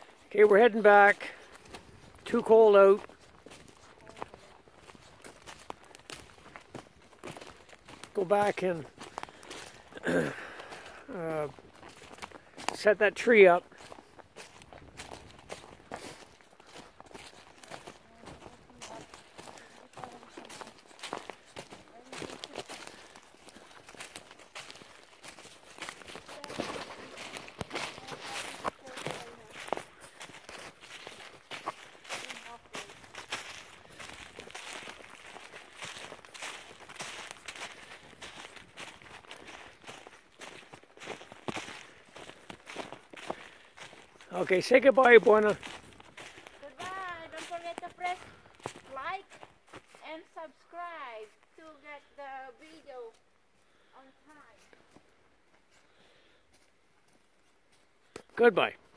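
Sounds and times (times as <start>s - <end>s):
footsteps crunching dry leaves: 0.0s - 50.1s.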